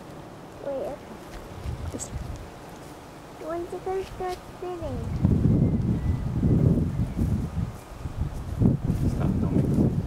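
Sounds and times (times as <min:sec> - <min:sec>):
wind blowing across microphone: 0:00.0 - 0:10.0.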